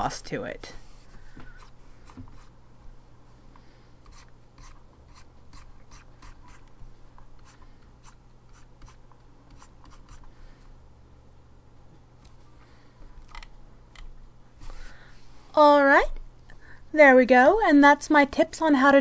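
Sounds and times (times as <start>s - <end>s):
low steady hum: 0.0s - 19.0s
stylus scratching a tablet: 1.5s - 2.6s, 4.1s - 6.7s, 7.4s - 10.3s.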